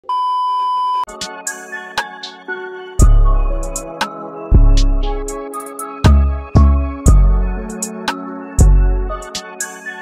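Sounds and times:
background music with held chords: 1.1s - 10.0s.

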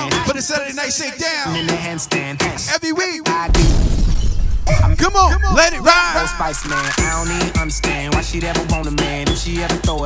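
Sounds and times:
crash sound effect with bass: 3.5s - 7.5s
person speaking over bass: 4.7s - 7.2s
party dance music: 4.7s - 10.0s.

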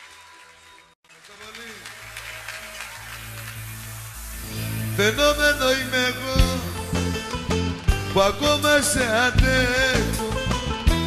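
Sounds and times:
live band playing: 2.7s - 11.0s
steady bass note: 3.1s - 9.8s.

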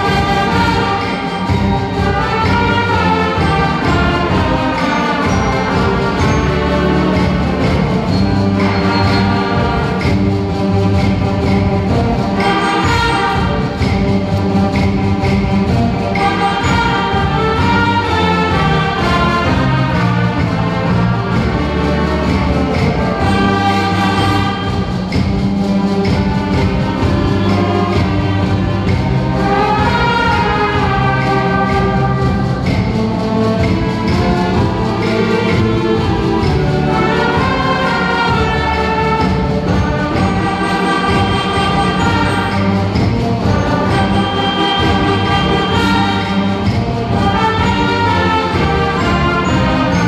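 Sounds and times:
concert band playing: 0.0s - 50.0s.

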